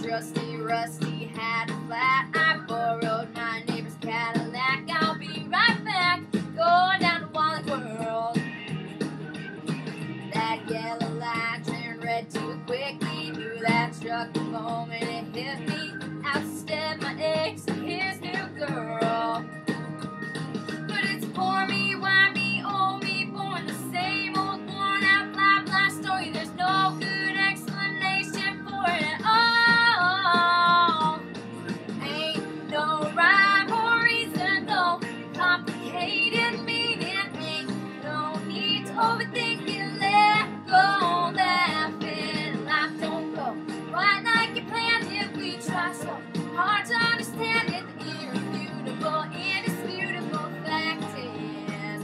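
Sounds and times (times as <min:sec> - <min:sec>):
woman singing country-pop song: 0:00.0 - 0:08.7, 0:10.2 - 0:20.0, 0:20.6 - 0:52.0
acoustic guitar: 0:00.0 - 0:52.0.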